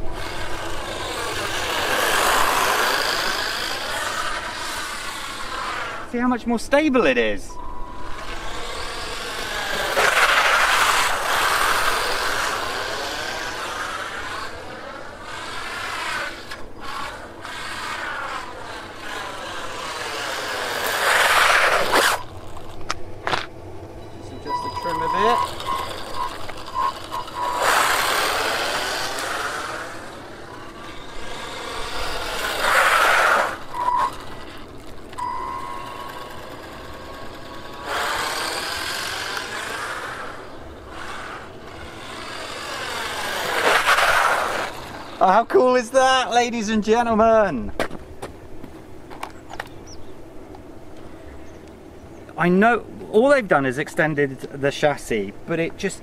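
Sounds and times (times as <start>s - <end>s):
toy car motor whining: 0.0s - 6.2s, 7.6s - 22.8s, 24.4s - 45.4s.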